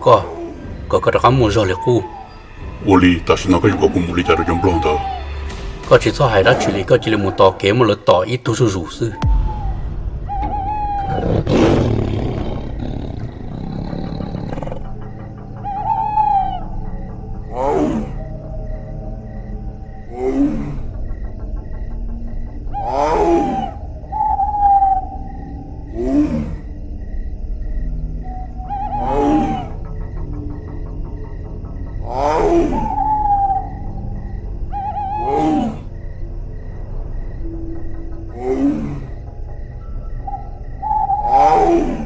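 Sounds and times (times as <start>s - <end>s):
dark music with low drone: 0.0s - 42.0s
tiger roaring: 10.9s - 16.6s, 32.0s - 33.4s, 35.0s - 35.9s.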